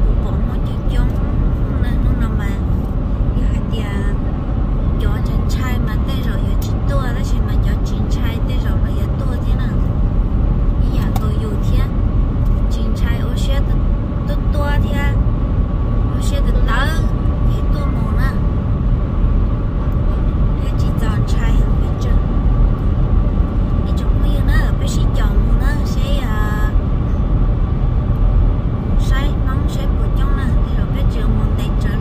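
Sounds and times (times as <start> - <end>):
car road and engine rumble: 0.0 - 32.0.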